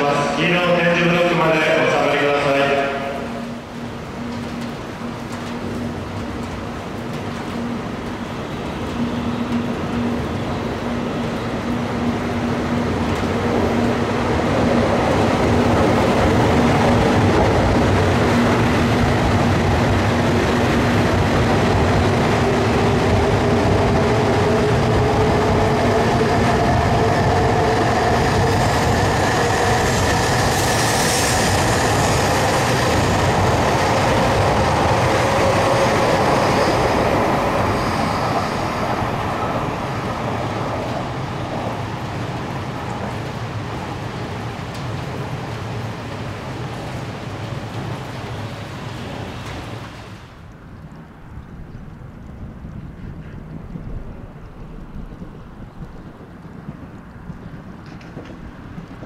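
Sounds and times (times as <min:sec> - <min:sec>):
train wheels rumbling: 0:00.0 - 0:50.3, 0:52.2 - 0:59.0.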